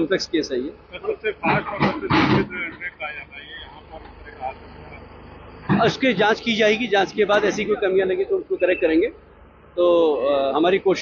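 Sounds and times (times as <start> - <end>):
man speaking: 0.0 - 9.2, 9.8 - 11.0
faint voices: 0.0 - 9.3
outdoor background noise: 0.0 - 11.0.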